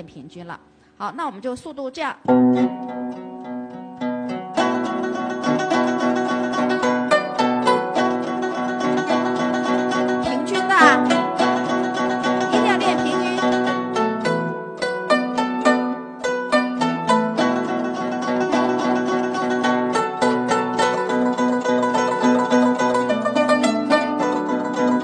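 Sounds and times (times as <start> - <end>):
zither tremolo plucking: 2.2 - 25.0.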